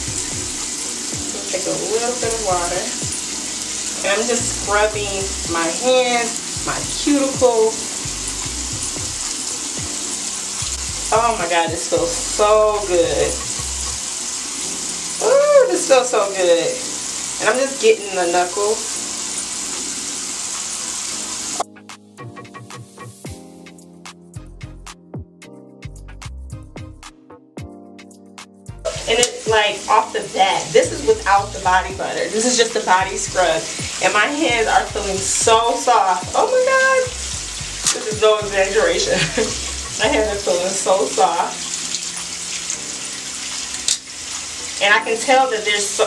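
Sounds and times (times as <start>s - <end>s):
background music with steady beat: 0.0s - 15.3s, 18.9s - 29.8s, 30.7s - 45.3s
faucet running: 0.0s - 21.6s, 28.9s - 46.0s
faucet running into a sink: 28.9s - 46.0s.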